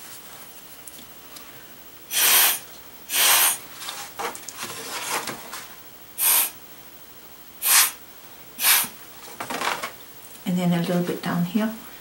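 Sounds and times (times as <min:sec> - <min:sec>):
breath puffs through a straw: 0:02.1 - 0:03.6, 0:06.2 - 0:06.6, 0:07.6 - 0:08.0, 0:08.6 - 0:08.9.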